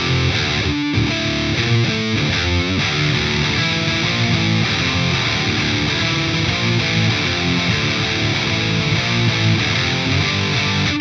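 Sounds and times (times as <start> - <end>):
distorted electric guitar riff: 0.0 - 11.0.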